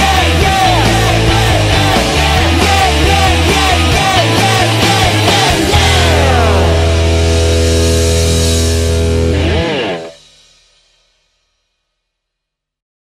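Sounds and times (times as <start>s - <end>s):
heavy bass note: 0.0s - 10.2s
distorted electric guitar chord: 0.0s - 10.3s.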